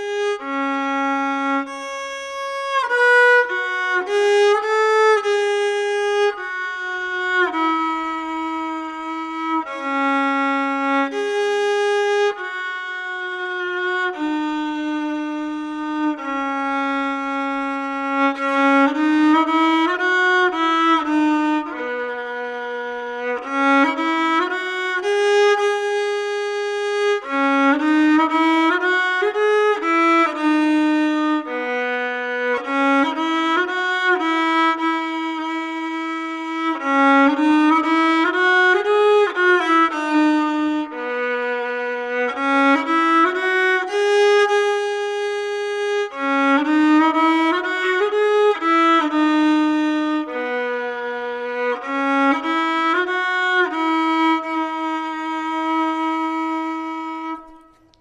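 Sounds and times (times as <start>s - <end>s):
solo violin slow melody: 0.0s - 58.0s.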